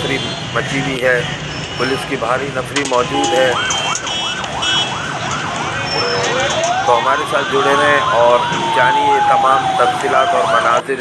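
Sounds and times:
siren yelping: 0:02.9 - 0:10.9.

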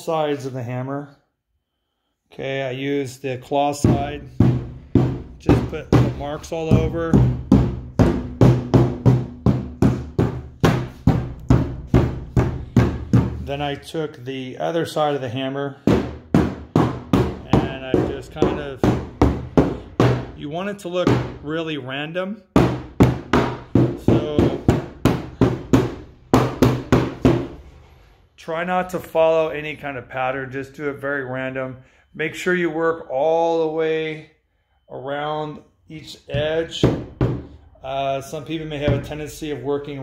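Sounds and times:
hammer striking wood: 0:03.8 - 0:13.5, 0:15.8 - 0:20.4, 0:22.6 - 0:27.6, 0:36.3 - 0:37.6.

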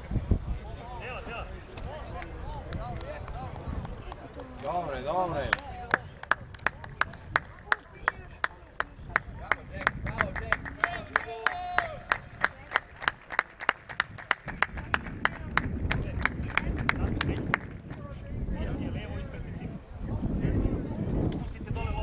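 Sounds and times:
voices in background: 0:00.0 - 0:22.0
rhythmic hand clapping: 0:05.5 - 0:18.0.

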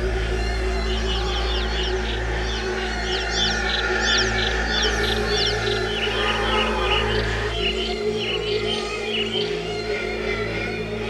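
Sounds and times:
low electronic drone: 0:00.0 - 0:11.0
high bird-like electronic chirps: 0:00.6 - 0:09.6.

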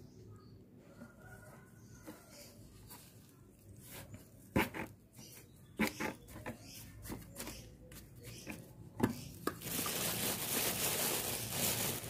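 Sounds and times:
scoop rustling dry potting mix: 0:09.6 - 0:12.0.

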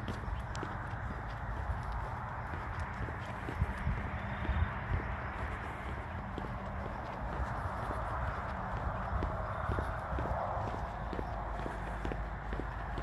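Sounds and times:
footsteps on asphalt: 0:00.0 - 0:13.0.

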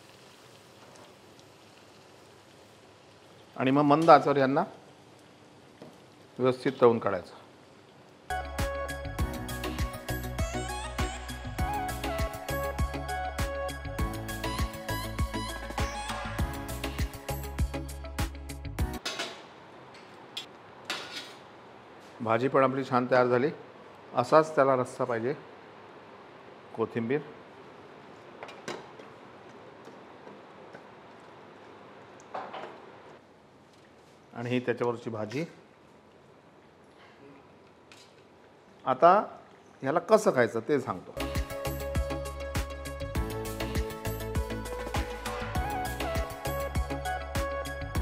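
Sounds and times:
dough sizzling in hot oil: 0:00.0 - 0:08.3.

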